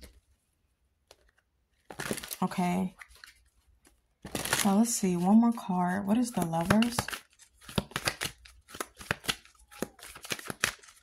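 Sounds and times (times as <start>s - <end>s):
cards being shuffled: 3.0s - 5.3s, 6.2s - 11.0s
crisp card snaps and taps: 6.4s - 11.0s.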